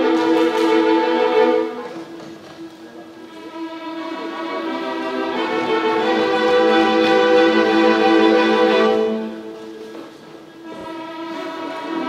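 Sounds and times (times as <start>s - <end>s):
string orchestra sustained chord: 3.1s - 9.8s, 10.6s - 12.0s.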